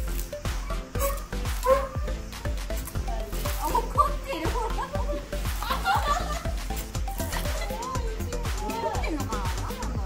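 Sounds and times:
background music with steady beat: 0.0s - 10.0s
dog barking: 1.0s - 2.2s.

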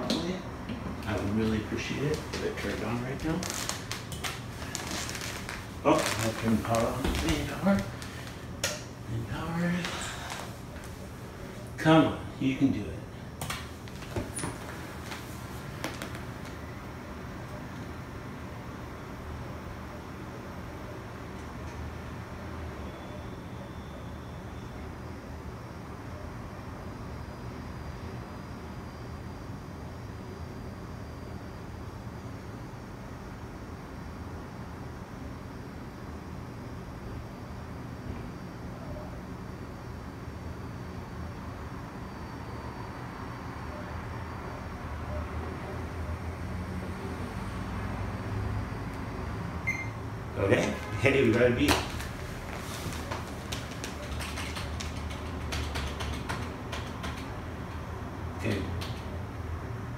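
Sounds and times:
computer cooling fans humming: 0.0s - 59.9s.

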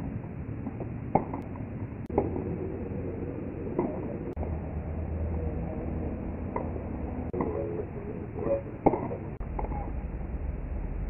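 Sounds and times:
steady background noise: 0.0s - 11.0s
tennis balls struck by racquets: 0.6s - 2.5s, 3.6s - 4.4s, 6.5s - 9.8s.

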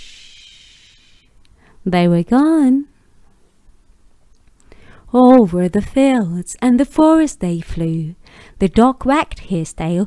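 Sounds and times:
soft breath: 0.0s - 1.8s, 4.7s - 5.1s.

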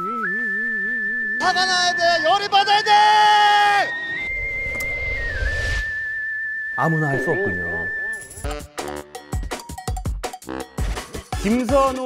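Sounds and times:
high whistling tone: 0.0s - 8.6s.

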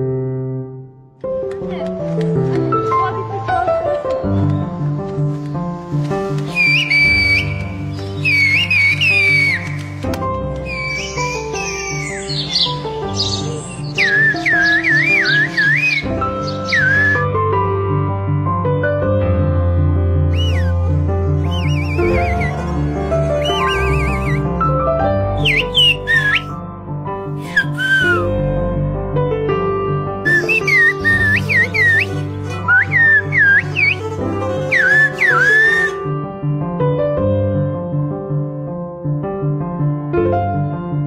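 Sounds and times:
background music with held notes: 0.6s - 41.0s
man whistling: 6.5s - 10.0s, 10.6s - 11.2s, 14.0s - 17.3s, 20.3s - 22.7s, 23.4s - 24.5s, 25.4s - 26.6s, 27.4s - 28.3s, 30.3s - 36.0s.

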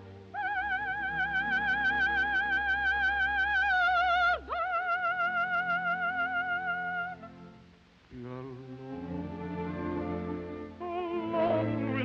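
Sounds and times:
soft orchestral accompaniment: 0.0s - 12.0s
soprano singing with vibrato: 0.3s - 7.4s, 10.8s - 12.0s.

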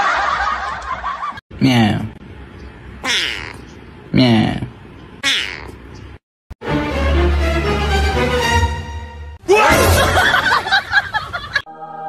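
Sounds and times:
kitten meowing: 3.0s - 3.6s, 5.2s - 5.8s.

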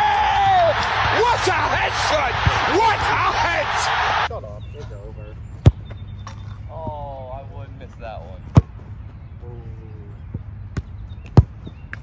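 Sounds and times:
football being kicked: 0.5s - 3.7s, 8.5s - 8.8s, 10.3s - 12.0s.

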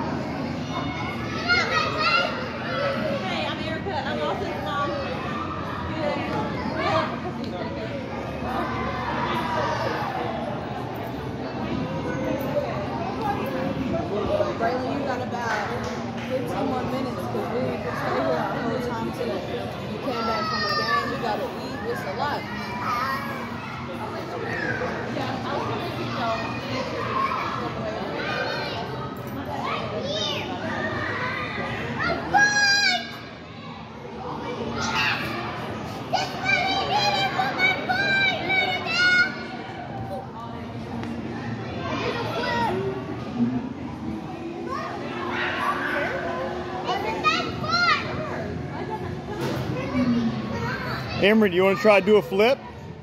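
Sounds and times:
children shouting and squealing: 0.4s - 3.3s, 20.0s - 25.3s, 25.9s - 40.2s, 44.5s - 52.0s.

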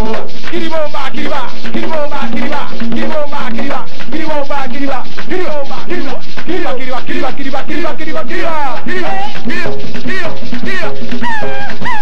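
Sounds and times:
fast hand drumming: 0.0s - 12.0s.

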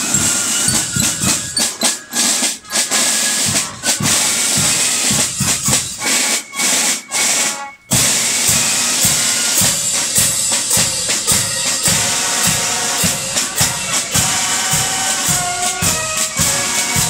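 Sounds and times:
snare drum strokes: 0.0s - 17.0s.

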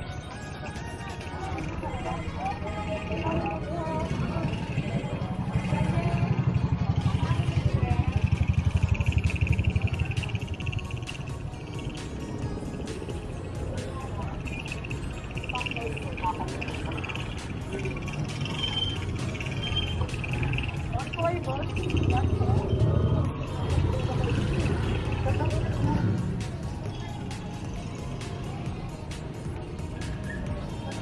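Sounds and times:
background music: 0.0s - 31.0s
street traffic: 0.0s - 31.0s
small motorcycle engine running: 2.8s - 27.2s.

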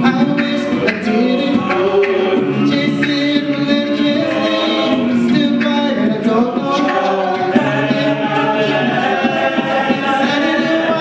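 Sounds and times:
male a cappella group singing: 0.0s - 11.0s.

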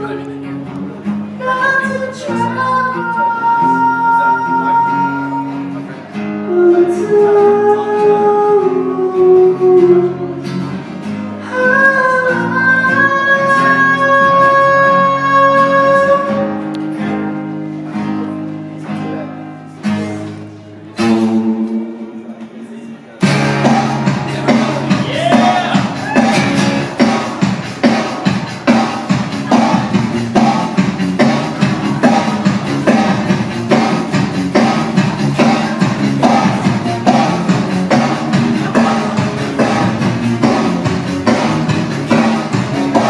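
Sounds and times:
strummed acoustic guitar: 0.0s - 22.4s, 23.2s - 43.0s
man singing long notes: 6.4s - 10.6s, 11.4s - 16.6s.

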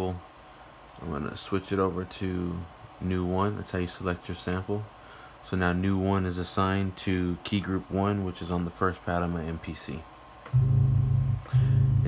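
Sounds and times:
low pitched-down sampled tone: 10.5s - 12.0s.

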